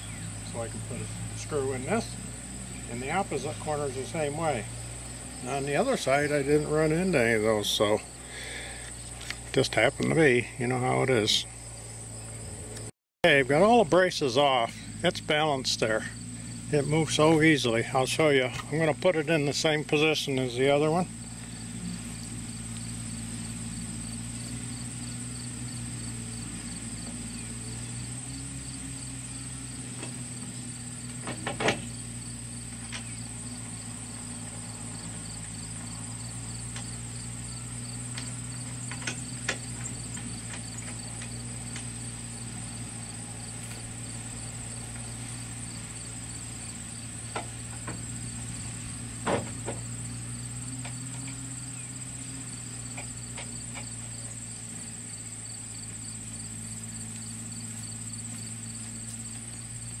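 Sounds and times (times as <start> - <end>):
crickets trilling: 0.0 - 60.0
low steady hum: 0.0 - 60.0.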